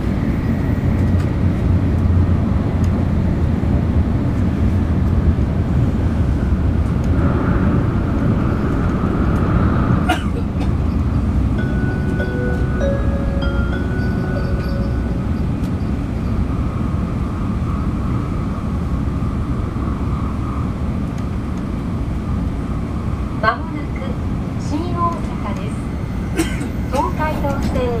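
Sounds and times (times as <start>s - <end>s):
train cabin rumble: 0.0s - 28.0s
onboard chime: 11.6s - 15.6s
train announcement voice: 11.6s - 16.0s, 23.4s - 28.0s.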